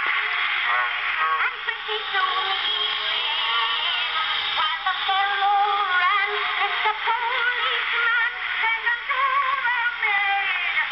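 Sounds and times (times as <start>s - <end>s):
tinny phonograph singing: 0.0s - 10.9s.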